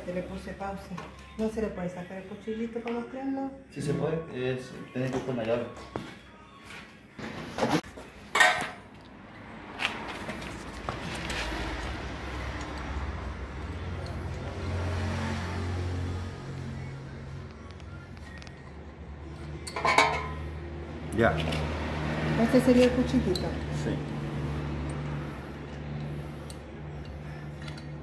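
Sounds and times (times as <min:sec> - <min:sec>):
metal tools clinking: 0:19.3 - 0:20.4.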